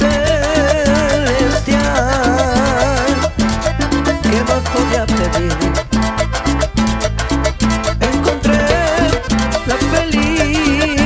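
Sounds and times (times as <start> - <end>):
bass line: 0.0 - 11.0
electric guitar: 0.0 - 11.0
percussion beat: 0.0 - 11.0.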